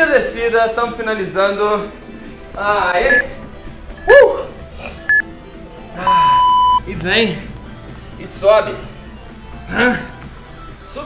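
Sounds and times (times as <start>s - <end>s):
long lower beep: 3.1s - 3.3s, 6.0s - 6.8s
short high beep: 6.0s - 6.8s.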